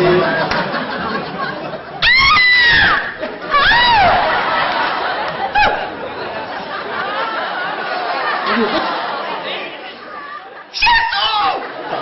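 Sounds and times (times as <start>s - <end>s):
chatter of people talking: 3.0s - 12.0s.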